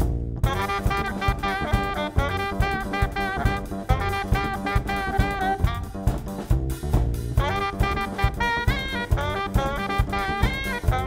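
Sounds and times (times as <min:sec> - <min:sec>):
drum kit steady beat: 0:00.0 - 0:11.0
tenor saxophone melody: 0:00.4 - 0:06.4, 0:07.4 - 0:11.0.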